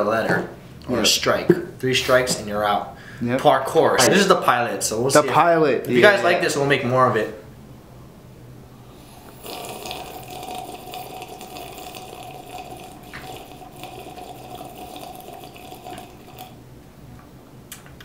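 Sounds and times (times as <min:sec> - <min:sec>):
sipping drink from paper cup: 0:09.1 - 0:16.6.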